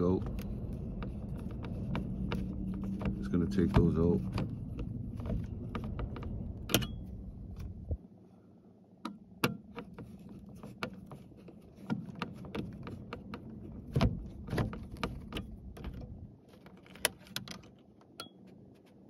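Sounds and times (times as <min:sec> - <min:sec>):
screwdriver clicking and scraping: 0:00.0 - 0:07.8, 0:09.1 - 0:19.0
low background rumble: 0:00.0 - 0:16.6.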